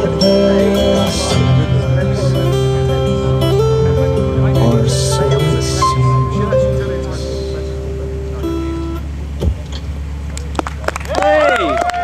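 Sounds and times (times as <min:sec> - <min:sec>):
low steady rumble: 0:00.0 - 0:12.0
thump: 0:09.4 - 0:09.8.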